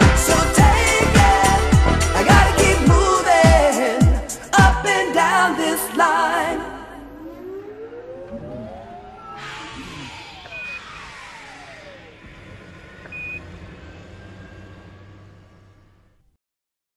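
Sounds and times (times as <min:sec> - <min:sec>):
synthesized tones sliding: 0:06.2 - 0:16.2
short high beep: 0:13.1 - 0:13.4.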